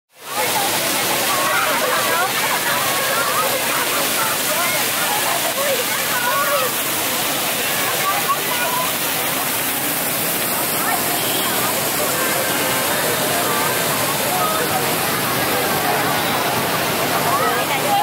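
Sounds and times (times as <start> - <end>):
crowd voices: 0.1 - 18.0
children chattering: 0.2 - 18.0
fountain jets splashing on paving: 0.2 - 18.0.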